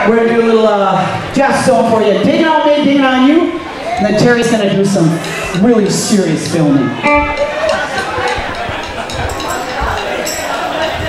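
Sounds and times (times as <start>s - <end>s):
voices in room: 0.0s - 11.0s
live band playing: 4.5s - 11.0s.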